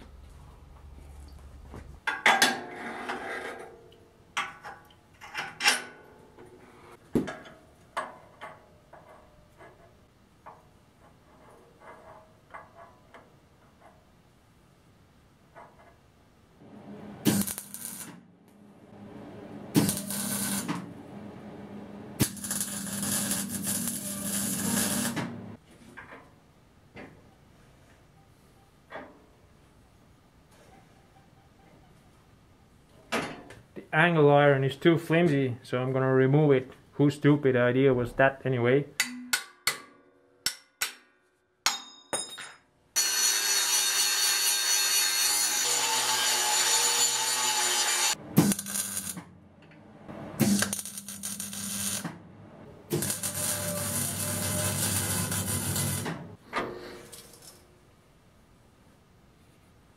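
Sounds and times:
low hum: 0:16.6 - 0:22.7
welder crackling sizzle: 0:17.2 - 0:18.2, 0:19.7 - 0:20.9, 0:22.2 - 0:25.6, 0:43.0 - 0:49.3, 0:50.4 - 0:52.1, 0:52.9 - 0:56.4.

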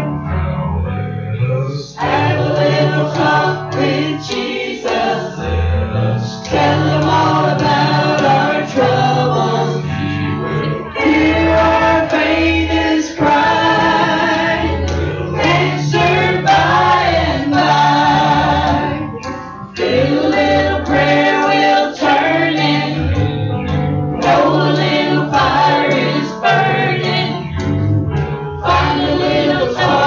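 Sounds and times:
instrumental accompaniment with bass: 0:00.0 - 0:30.0
worship team singing gospel song: 0:01.4 - 0:30.0.

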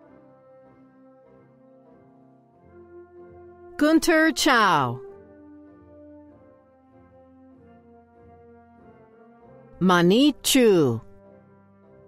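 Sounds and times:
quiet horn-like background music: 0:00.0 - 0:12.0
voice announcing: 0:03.8 - 0:05.1, 0:09.8 - 0:11.1.

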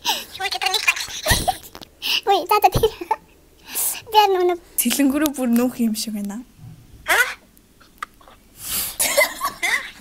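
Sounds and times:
young women laughing muffled: 0:09.0 - 0:10.0.

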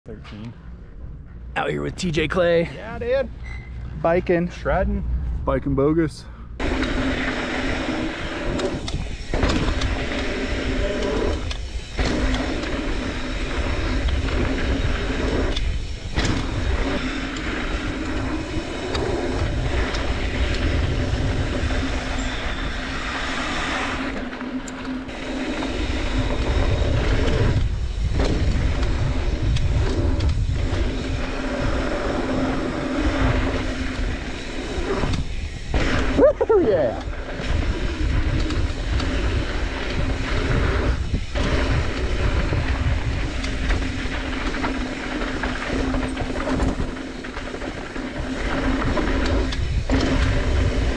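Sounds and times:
wind rushing over microphone: 0:02.1 - 0:24.4, 0:25.0 - 0:50.9
tyres rolling over dirt: 0:06.6 - 0:50.9
bike knocks and rattles: 0:37.4 - 0:50.9.

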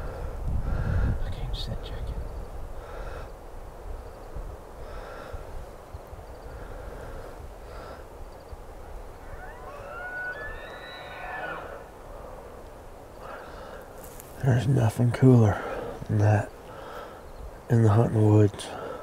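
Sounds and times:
elk bugling whistle: 0:09.2 - 0:11.9.

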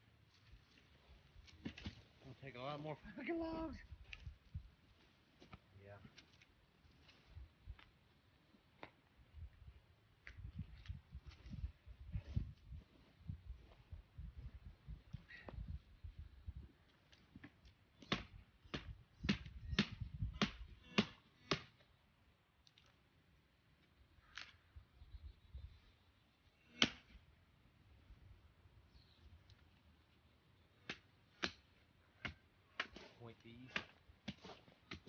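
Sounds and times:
stakes pounded into ground: 0:26.7 - 0:27.1.

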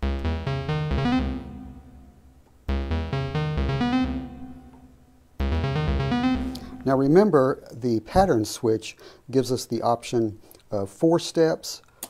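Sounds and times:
synthesizer short note sequence: 0:00.0 - 0:07.1.

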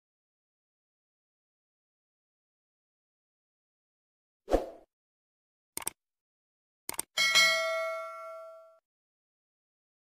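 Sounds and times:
double mouse click: 0:05.8 - 0:06.0, 0:06.9 - 0:07.1
notification bell ding: 0:07.2 - 0:08.8.

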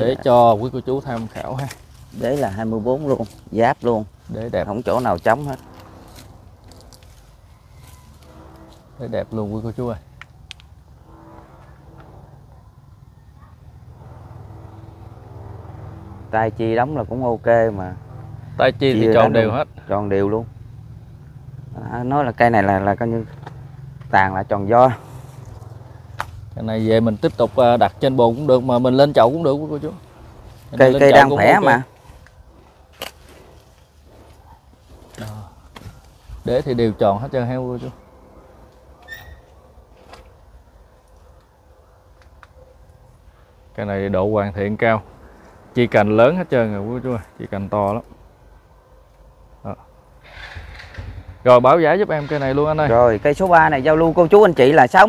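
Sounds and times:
low engine-like hum: 0:00.0 - 0:50.2
low outdoor rumble: 0:00.0 - 0:55.0.

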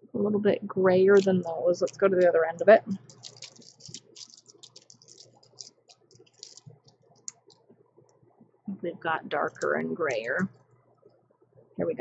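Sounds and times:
plastic swatch sticks clicking: 0:01.2 - 0:07.6.

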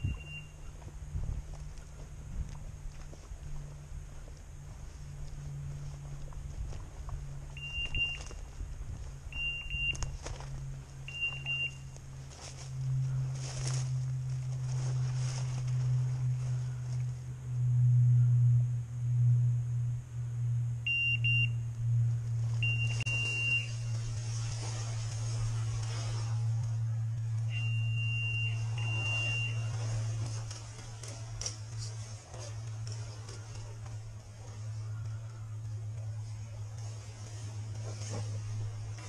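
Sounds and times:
beeper collar high beeps: 0:00.0 - 0:00.7, 0:07.6 - 0:08.4, 0:09.3 - 0:10.1, 0:11.0 - 0:12.0, 0:20.8 - 0:21.6, 0:22.6 - 0:24.0, 0:27.5 - 0:29.9
low hum: 0:00.0 - 0:39.0.

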